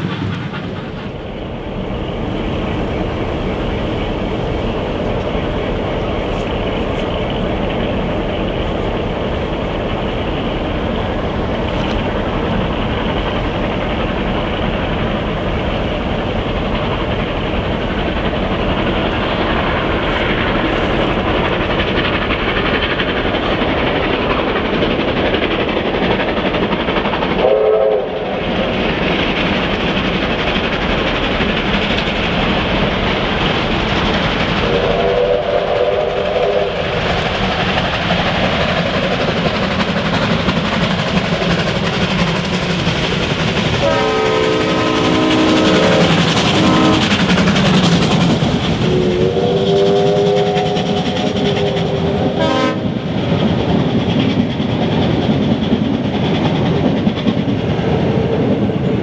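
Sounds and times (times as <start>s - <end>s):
train running on rails: 0.0s - 59.0s
steam locomotive whistle: 27.4s - 28.4s, 34.7s - 37.0s, 43.8s - 47.4s, 48.7s - 53.1s.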